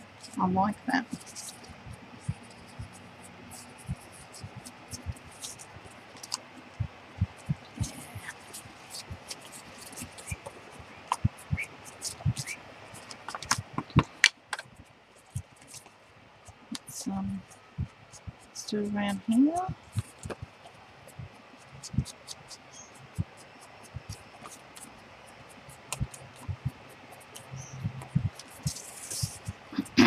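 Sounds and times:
paper rustling and scraping: 1.0s - 2.8s, 27.6s - 29.6s
sharp clicks and taps: 11.1s - 14.7s.

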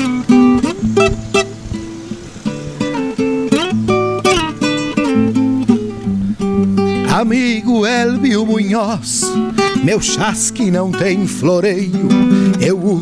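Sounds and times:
acoustic guitar fingerpicking: 0.0s - 13.0s.

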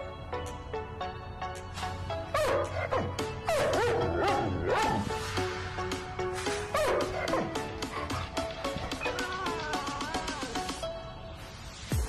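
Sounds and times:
dog whining and yipping: 2.4s - 5.0s.

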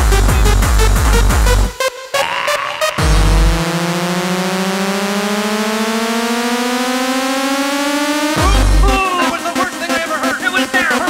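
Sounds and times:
deep kick drum hit: 8.4s - 9.0s.

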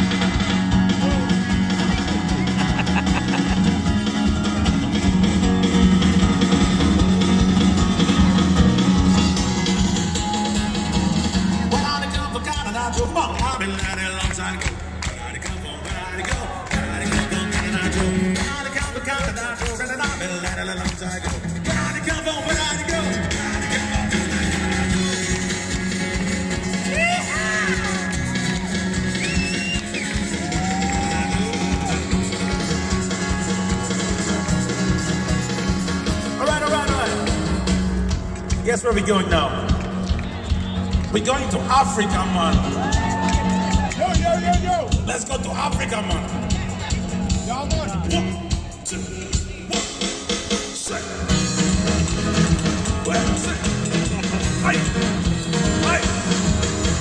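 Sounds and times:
strummed acoustic guitar: 0.0s - 14.6s, 15.6s - 30.5s, 31.3s - 38.3s, 51.2s - 57.0s
bass: 0.0s - 57.0s
drums: 0.0s - 57.0s
man singing: 11.6s - 24.1s, 48.0s - 51.4s, 52.8s - 54.0s.

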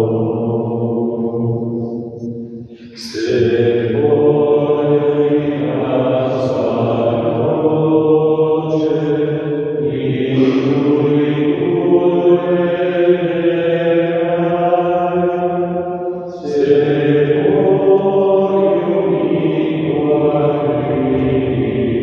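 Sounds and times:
slow devotional chant: 0.0s - 22.0s.

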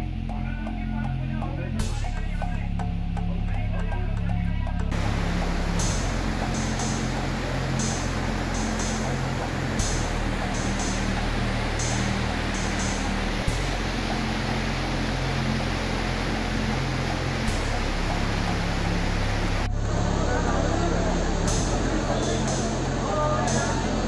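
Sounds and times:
background music with beat: 0.0s - 24.0s
fast-flowing floodwater rushing: 4.9s - 24.0s.

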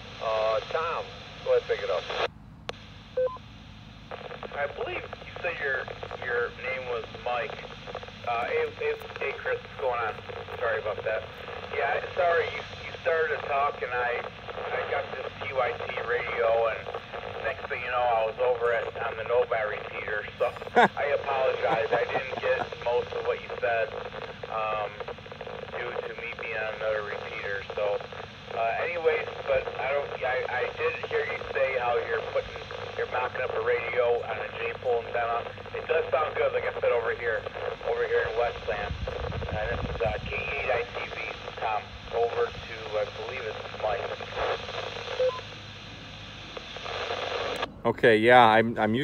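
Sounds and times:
low steady radio hiss: 0.0s - 49.0s
person talking over radio: 0.2s - 2.3s, 4.2s - 45.2s, 47.1s - 49.0s.

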